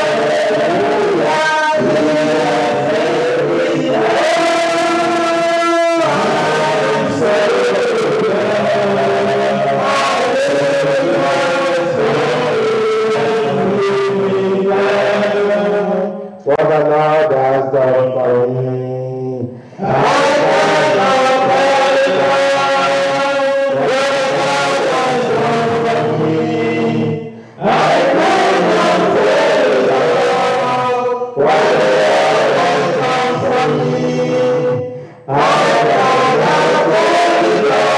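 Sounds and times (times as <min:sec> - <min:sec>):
chanted church singing: 0:00.0 - 0:37.9.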